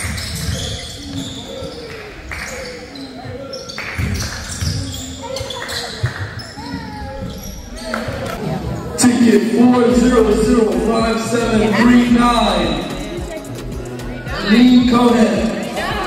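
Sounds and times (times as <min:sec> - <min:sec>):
indistinct voices: 0:00.0 - 0:16.0.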